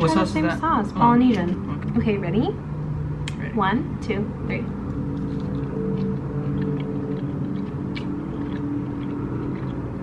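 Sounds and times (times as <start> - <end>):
low steady hum: 0.0 - 10.0
people chewing: 4.8 - 10.0.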